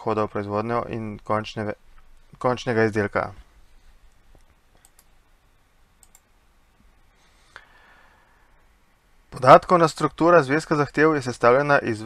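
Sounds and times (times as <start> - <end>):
faint short clicks: 4.1 - 5.1, 6.0 - 6.3.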